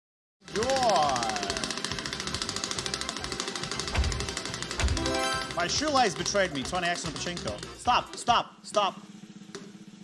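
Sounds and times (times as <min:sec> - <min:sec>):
rapid even ticking: 0:00.5 - 0:08.4
game show music: 0:01.1 - 0:08.4.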